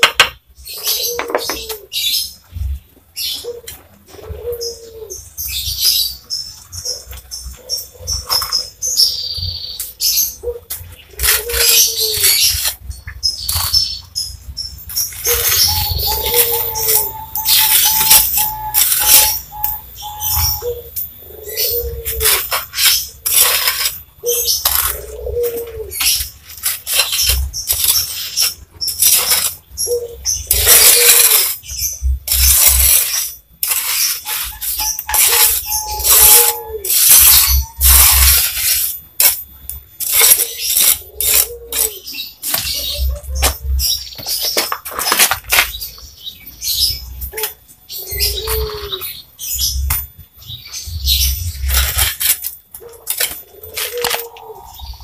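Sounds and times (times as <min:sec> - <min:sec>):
scraping and knocking tiles: 0:00.0 - 0:00.4, 0:01.1 - 0:01.8, 0:22.0 - 0:24.0, 0:32.3 - 0:45.9, 0:51.4 - 0:54.4
bird calling: 0:00.7 - 0:02.4, 0:03.2 - 0:33.0, 0:33.8 - 0:38.9, 0:40.0 - 0:55.0.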